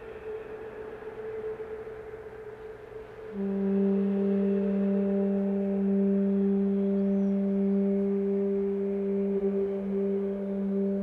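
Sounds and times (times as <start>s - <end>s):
trombone choir chord: 0.0s - 11.0s.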